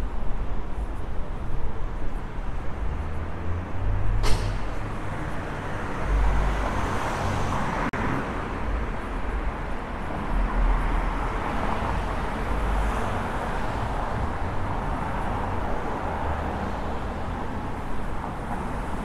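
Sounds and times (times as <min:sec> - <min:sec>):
low rumble of traffic: 0:00.0 - 0:19.0.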